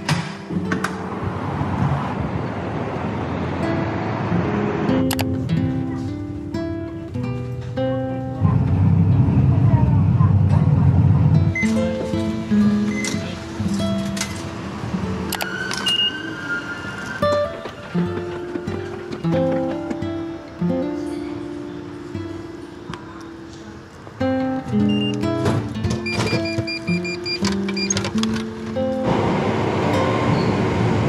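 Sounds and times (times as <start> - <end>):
train station ambience: 0.0 - 31.0.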